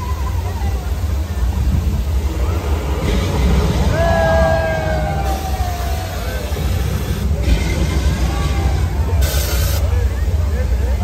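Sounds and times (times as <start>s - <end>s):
deep steady rumble: 0.0s - 11.0s.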